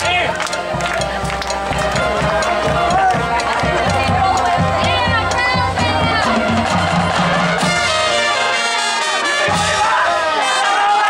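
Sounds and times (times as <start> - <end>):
marching drums beat: 0.0 - 10.2
brass sustaining chords: 0.0 - 11.0.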